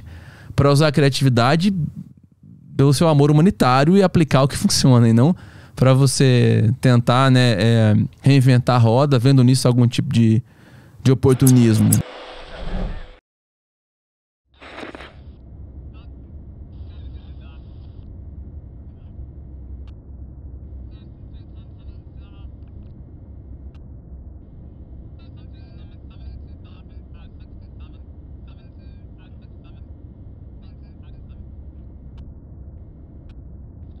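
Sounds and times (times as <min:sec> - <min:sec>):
deep rumble: 0:14.6 - 0:34.0.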